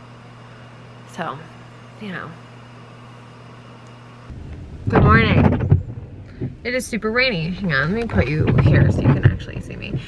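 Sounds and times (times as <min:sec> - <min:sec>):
faint steady hum: 0:00.0 - 0:10.0
low rumble in car cabin: 0:04.3 - 0:10.0.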